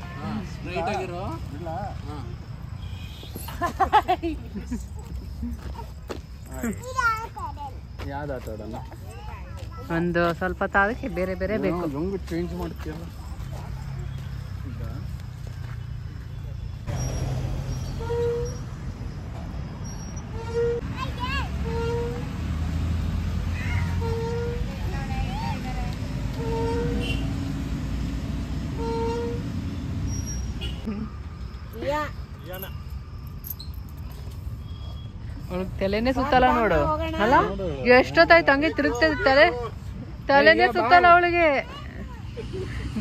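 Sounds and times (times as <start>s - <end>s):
swing chains squeaking: 16.2s - 22.5s, 23.5s - 27.4s, 28.7s - 43.0s.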